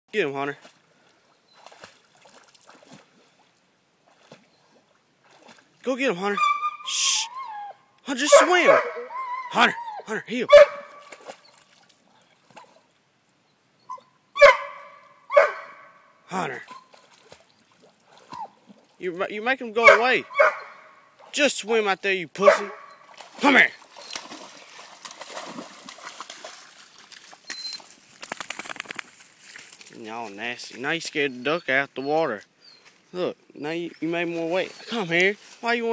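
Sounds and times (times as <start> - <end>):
dog paddling water splashes: 0.6 - 5.8, 10.6 - 12.9, 16.6 - 19.0, 22.5 - 29.9
duck wings flapping: 28.1 - 29.2.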